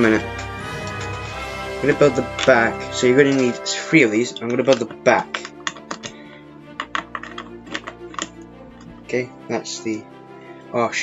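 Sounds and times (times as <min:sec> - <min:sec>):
background music held notes: 0:00.0 - 0:11.0
plastic bricks clicking: 0:04.3 - 0:09.0.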